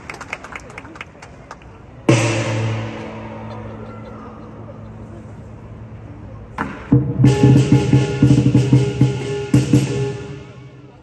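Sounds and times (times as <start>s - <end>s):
crowd murmur: 0.0s - 11.0s
big drum: 2.1s - 4.8s, 6.6s - 10.7s.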